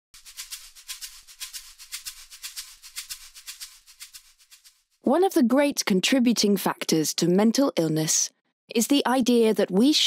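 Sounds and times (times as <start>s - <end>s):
shaker rattle: 0.2s - 4.9s.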